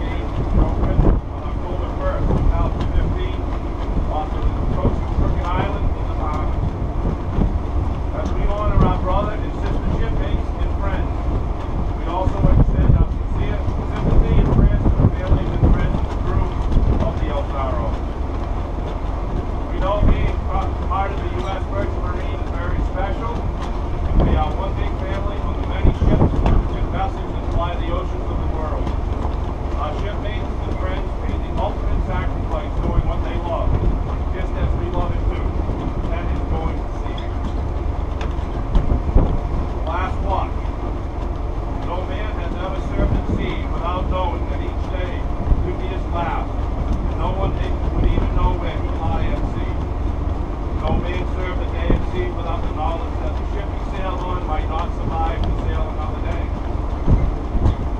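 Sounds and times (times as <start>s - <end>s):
distant man speaking: 0.0s - 18.1s, 18.7s - 40.9s, 41.7s - 57.9s
ship machinery rumble: 0.0s - 57.9s
wind rumble: 0.0s - 57.9s.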